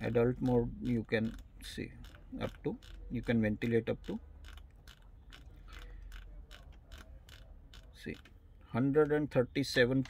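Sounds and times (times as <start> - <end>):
rotary knob clicking: 0.0 - 8.4.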